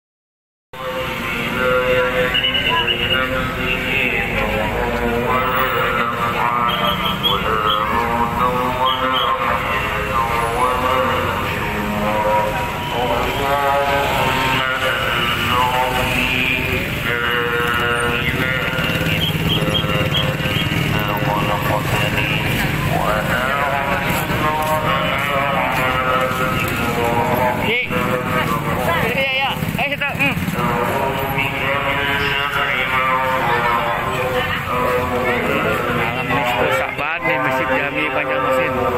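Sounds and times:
crowd voices: 0:00.8 - 0:38.9
motorcycle engines running: 0:00.9 - 0:38.9.

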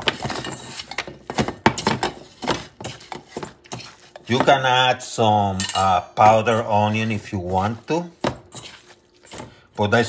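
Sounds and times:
wet squishing of meat: 0:07.0 - 0:09.7.

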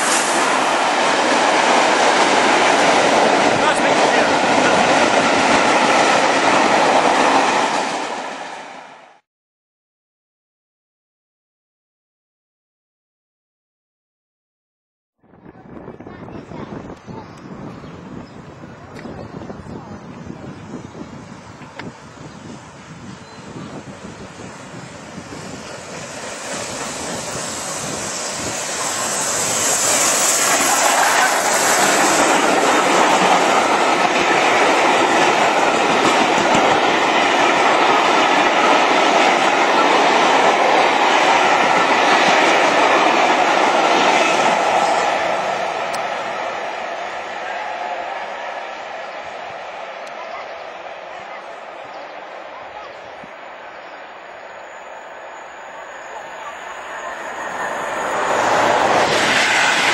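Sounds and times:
high hiss: 0:00.0 - 0:00.8, 0:25.4 - 0:33.8
steam train passing: 0:00.0 - 0:09.2, 0:15.4 - 0:59.9.

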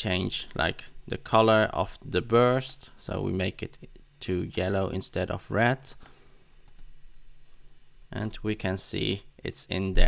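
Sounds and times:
low steady hum: 0:00.0 - 0:10.0
computer mouse clicks: 0:06.6 - 0:06.9.

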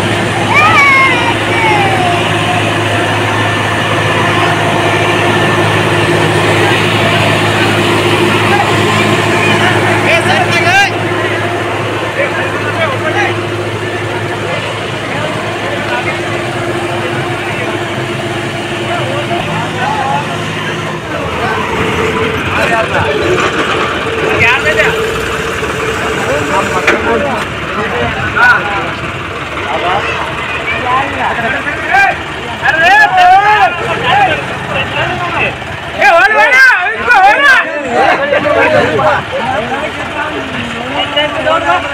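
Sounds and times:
people shouting: 0:00.0 - 0:11.0, 0:31.8 - 0:39.7
tractor diesel engine running: 0:00.0 - 0:41.9
voices calling out loudly: 0:00.0 - 0:41.9.

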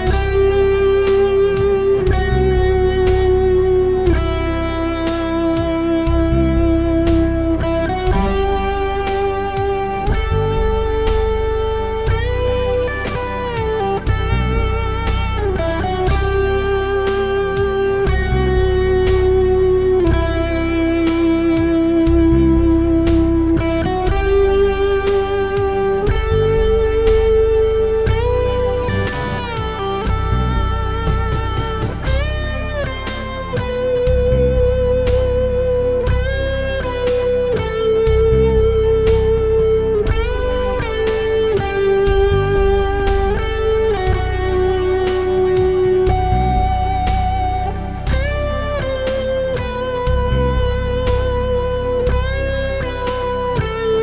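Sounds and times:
electric guitar melodic lead: 0:00.0 - 0:54.0
steady beat: 0:00.0 - 0:54.0.

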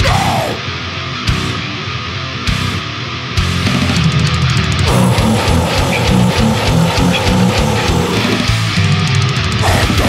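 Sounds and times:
distorted electric guitar riff: 0:00.0 - 0:10.0
fast drumming with cymbals: 0:03.7 - 0:10.0.

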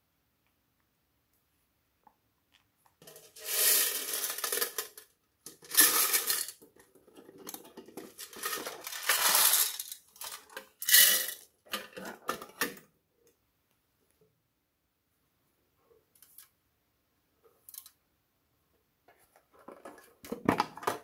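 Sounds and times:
foam beads rattling in tin: 0:03.0 - 0:06.6, 0:08.0 - 0:11.5
metal tin clattering: 0:03.0 - 0:12.6.

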